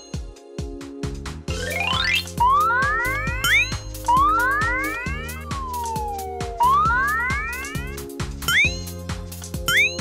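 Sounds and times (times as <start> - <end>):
upbeat children's music: 0.0 - 10.0
cartoon gliding pitch effects: 1.6 - 7.9
slow falling tone: 1.6 - 8.0.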